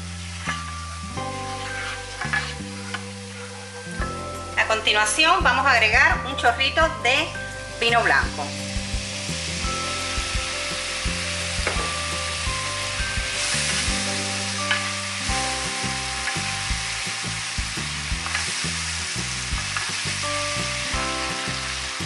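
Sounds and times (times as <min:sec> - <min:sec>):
sauce sizzling in a pan: 0:00.0 - 0:22.0.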